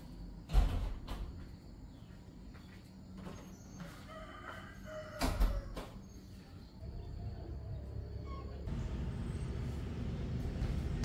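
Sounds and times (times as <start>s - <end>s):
rooster crowing faintly: 3.7s - 6.1s.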